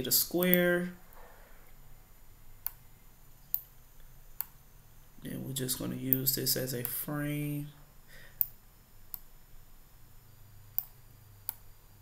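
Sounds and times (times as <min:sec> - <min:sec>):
computer mouse clicking: 0:04.4 - 0:04.6, 0:08.4 - 0:09.3, 0:10.8 - 0:11.7.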